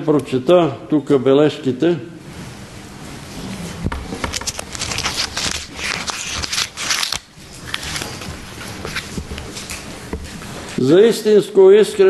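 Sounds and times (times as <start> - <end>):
paper rustling and crinkling: 3.3 - 10.8.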